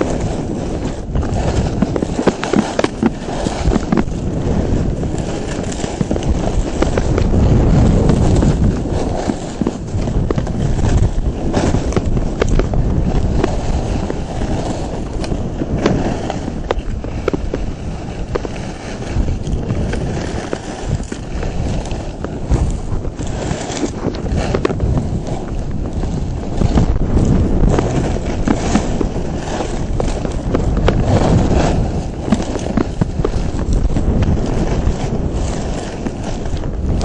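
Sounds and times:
skis scraping on hard snow: 0.0 - 37.0
wind buffeting microphone: 0.0 - 37.0.

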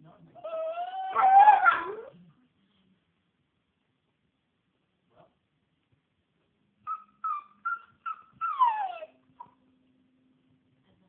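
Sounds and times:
dog whining: 0.4 - 2.2, 6.8 - 9.6.

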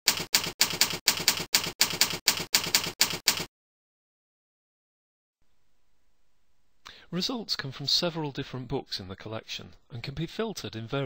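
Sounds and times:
keyboard typing: 0.0 - 3.5.

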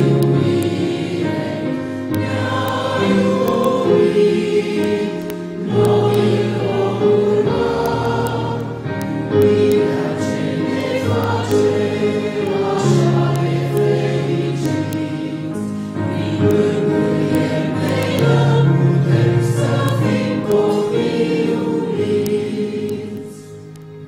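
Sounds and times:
congregation singing a hymn: 0.0 - 24.0.

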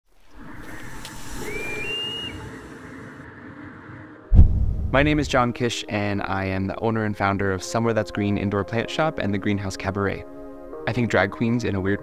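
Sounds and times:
short high whistled note: 1.2 - 2.4
soft wind-like rushing: 1.5 - 5.7.

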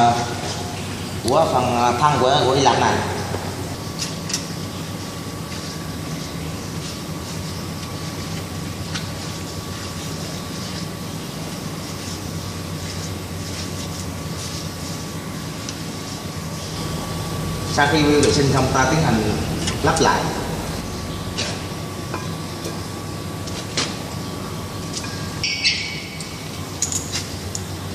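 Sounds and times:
low machinery hum: 0.0 - 27.9
thin steady whine: 0.0 - 27.9.

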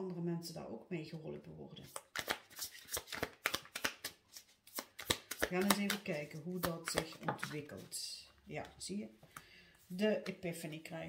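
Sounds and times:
cards being shuffled: 1.8 - 7.9.

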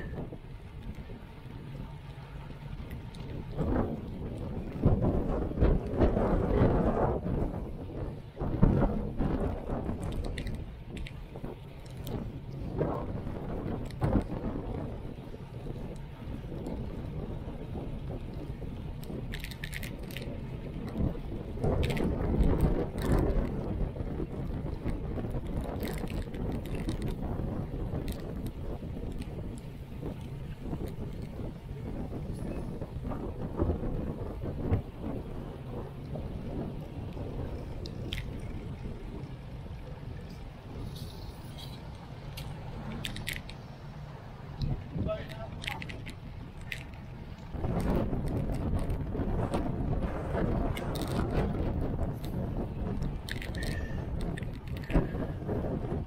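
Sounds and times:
low road rumble: 0.0 - 56.0
wind rushing over microphone: 0.0 - 56.0.

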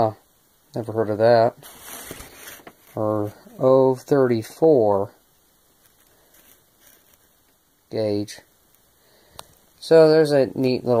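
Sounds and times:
paper rustling: 1.6 - 3.4, 5.8 - 7.3.

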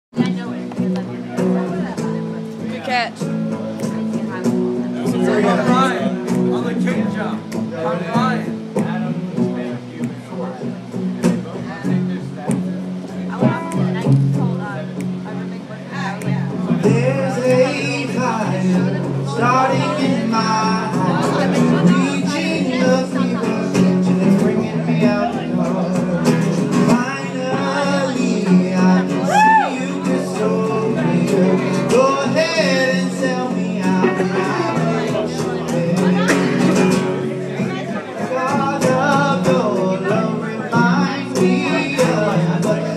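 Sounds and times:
live guitar music: 0.1 - 42.9
people talking: 0.2 - 42.9
person singing: 16.8 - 37.2, 37.9 - 42.9.

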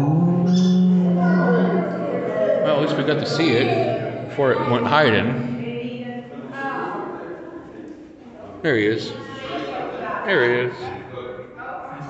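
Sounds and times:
person holding long steady note: 0.0 - 5.8.

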